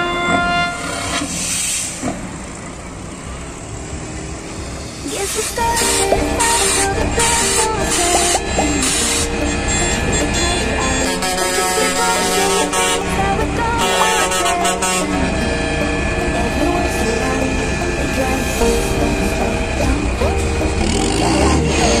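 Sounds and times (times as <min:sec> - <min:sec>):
truck horns: 0:00.0 - 0:02.0, 0:03.1 - 0:22.0
diesel truck engines running: 0:00.2 - 0:22.0
background voices: 0:05.0 - 0:22.0.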